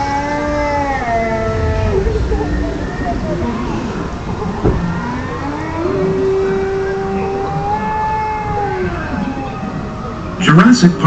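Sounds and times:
low rumble: 0.0s - 7.4s.

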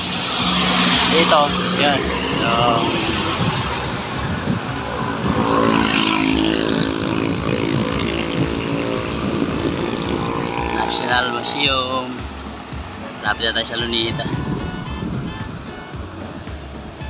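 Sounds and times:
road and wind rumble: 0.0s - 17.0s
vehicle engine hum: 0.0s - 17.0s.

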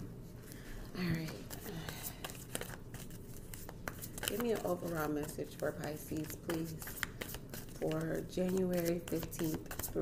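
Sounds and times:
cards being shuffled: 1.2s - 10.0s.

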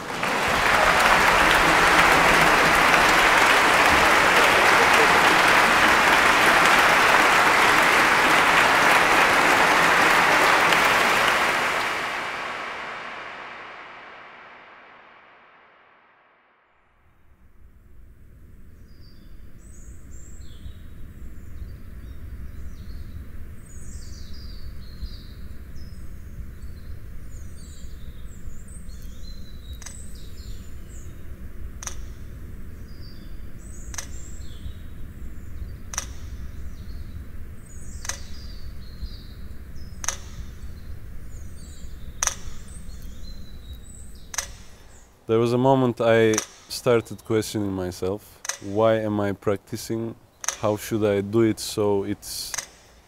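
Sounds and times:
birds chirping: 0.0s - 13.4s, 18.8s - 53.0s
low rumble: 12.0s - 16.4s
sharp click: 31.8s - 32.1s, 33.8s - 34.4s, 35.9s - 36.4s, 38.0s - 38.5s, 40.0s - 40.7s, 42.2s - 44.9s, 46.3s - 46.8s, 48.4s - 48.7s, 50.4s - 50.7s, 52.5s - 53.0s.

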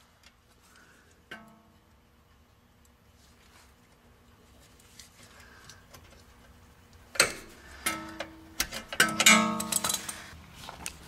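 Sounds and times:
metal tools clinking on steel: 8.9s - 10.3s.

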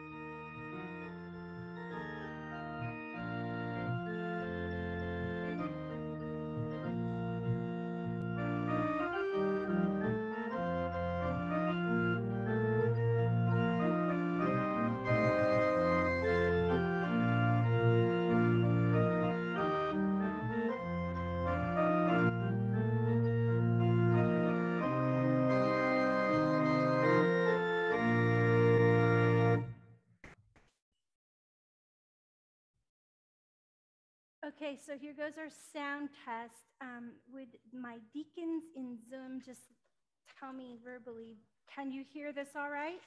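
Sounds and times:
organ playing slow chords: 0.0s - 29.8s.

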